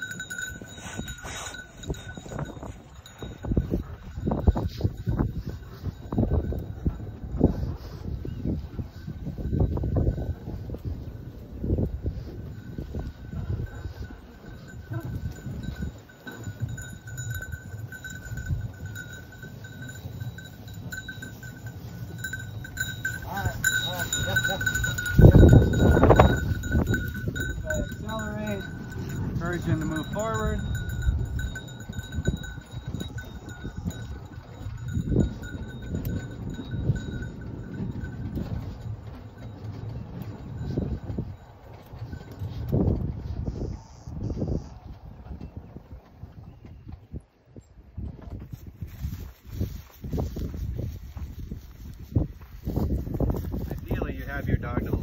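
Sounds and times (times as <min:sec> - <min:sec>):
dog bell ringing: 0:00.0 - 0:11.3, 0:12.1 - 0:42.8
wind on microphone: 0:00.0 - 0:55.0.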